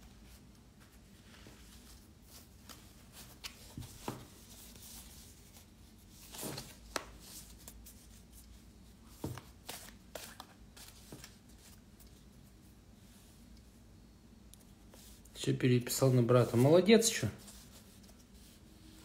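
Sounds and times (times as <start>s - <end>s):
cards being shuffled: 9.2s - 12.2s.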